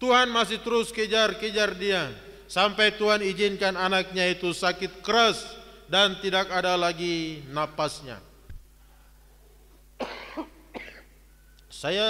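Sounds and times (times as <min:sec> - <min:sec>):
man coughing: 0:10.0 - 0:11.2.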